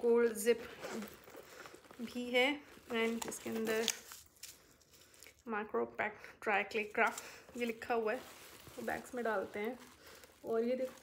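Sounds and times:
woman speaking: 0:00.0 - 0:01.1, 0:02.0 - 0:04.0, 0:05.4 - 0:11.0.

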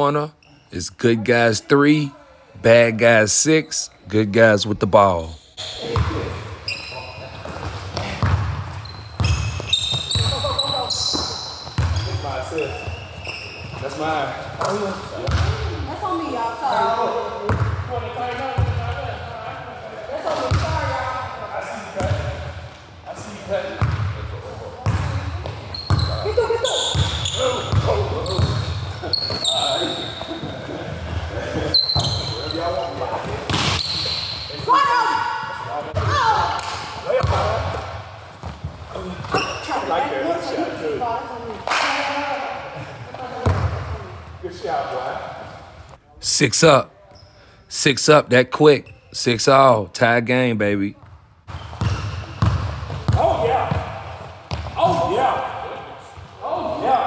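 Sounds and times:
basketball bouncing on court: 0:05.9 - 0:06.3, 0:07.4 - 0:12.2, 0:12.8 - 0:15.7, 0:17.5 - 0:19.0, 0:20.3 - 0:21.0, 0:23.7 - 0:24.2, 0:24.8 - 0:30.4, 0:32.0 - 0:34.8, 0:36.0 - 0:39.5, 0:43.4 - 0:44.0, 0:51.0 - 0:55.2
players' voices calling out: 0:23.2 - 0:37.9.

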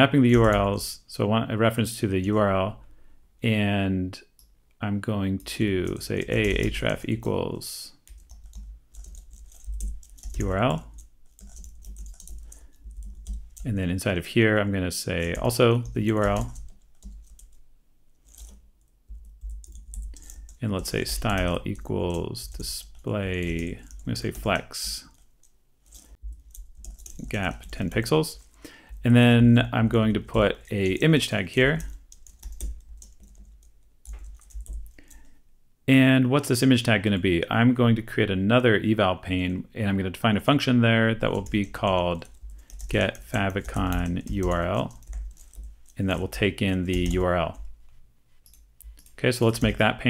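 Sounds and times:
computer keyboard typing: 0:00.3 - 0:00.7, 0:05.8 - 0:07.4, 0:08.0 - 0:13.8, 0:15.2 - 0:17.6, 0:18.2 - 0:29.1, 0:29.9 - 0:35.3, 0:41.2 - 0:47.7, 0:48.4 - 0:49.9.

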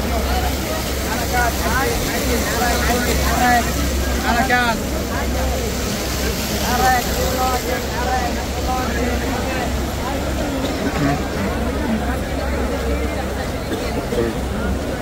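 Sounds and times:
crowd voices talking: 0:00.0 - 0:15.0.

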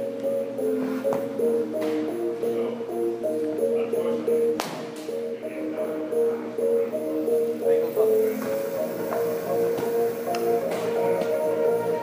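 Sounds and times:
music playing: 0:00.0 - 0:12.0
baseball bat hitting ball: 0:04.6 - 0:04.9.

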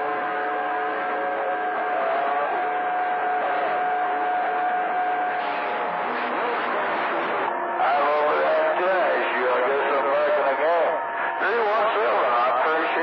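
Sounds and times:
sustained whistle tone: 0:00.0 - 0:06.5
radio static hiss: 0:05.4 - 0:13.0.

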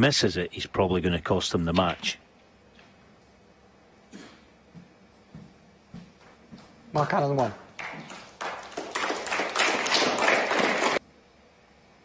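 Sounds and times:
audience clapping: 0:07.0 - 0:11.0.

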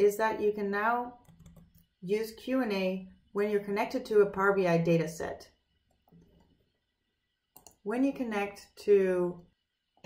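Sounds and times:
mouse clicks: 0:01.2 - 0:01.8, 0:07.6 - 0:07.8.

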